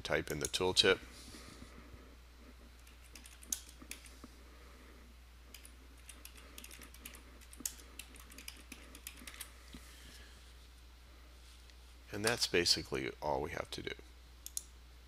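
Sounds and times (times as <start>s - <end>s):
keyboard typing: 2.8s - 4.1s, 5.5s - 9.5s.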